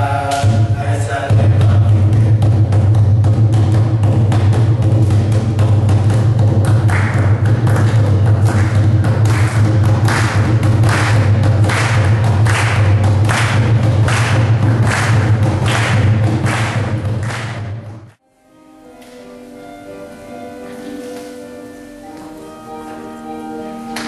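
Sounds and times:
hand percussion beats: 0.0 - 18.2.

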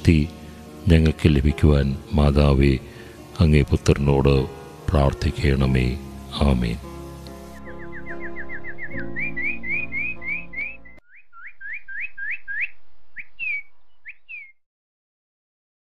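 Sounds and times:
soft background music: 0.0 - 11.0
bird chirping: 7.6 - 14.6.

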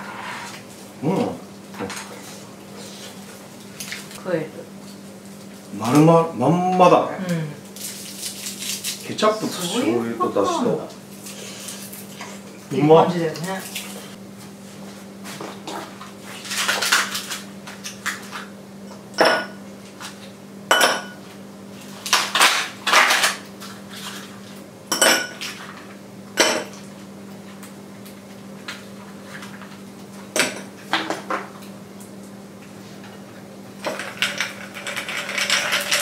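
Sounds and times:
ice cubes clinking into glass: 33.9 - 36.0.

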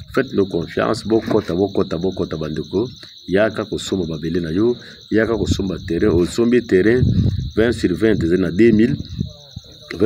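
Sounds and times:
high-pitched cricket trill: 0.0 - 10.0.

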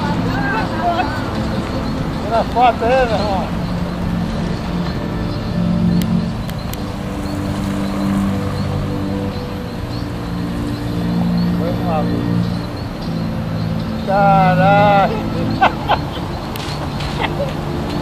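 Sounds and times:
background music with low notes: 0.0 - 18.0
faint outdoor voices: 0.0 - 18.0.

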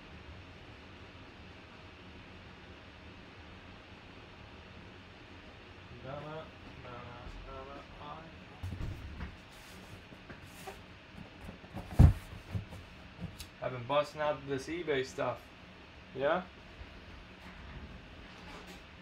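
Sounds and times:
low room hiss: 0.0 - 19.0
cardboard box thump on table: 11.7 - 12.8.

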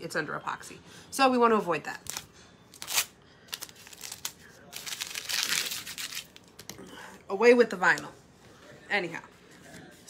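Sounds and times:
vinyl being crumpled: 2.0 - 6.6.

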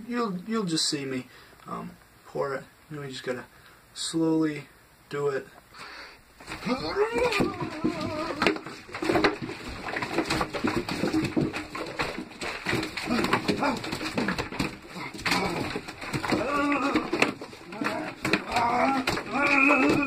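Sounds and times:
handling clicks and knocks: 6.4 - 20.0.

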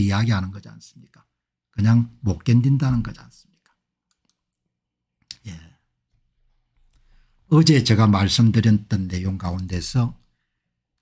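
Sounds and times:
computer mouse clicking: 3.6 - 4.6.

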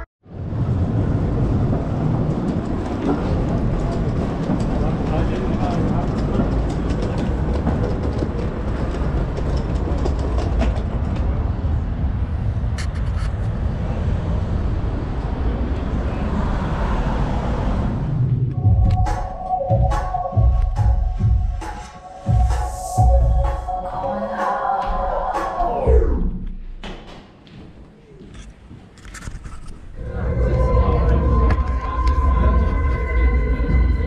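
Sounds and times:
city street rumble: 0.0 - 34.0
music with a beat: 18.6 - 25.8.

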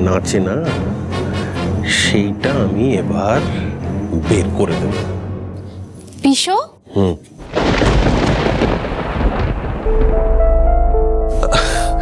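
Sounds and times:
thunder-like rumbling effect: 7.4 - 10.8.

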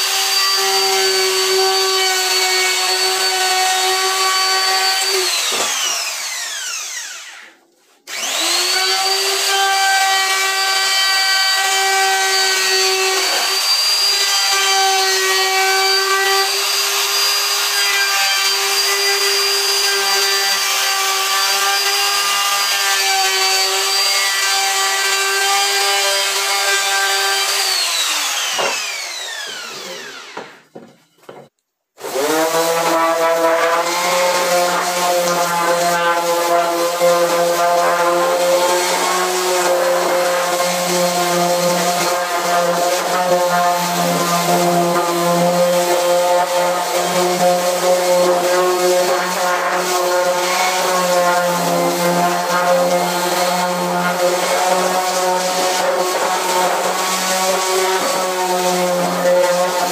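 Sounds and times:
electric router running: 0.0 - 7.5, 8.1 - 14.1, 27.1 - 30.6
electric orbital sander: 0.0 - 30.6, 32.0 - 59.9.

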